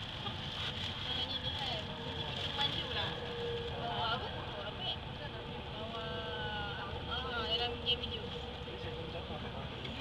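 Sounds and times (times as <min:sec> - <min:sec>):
light rail train running on track: 0:00.0 - 0:10.0.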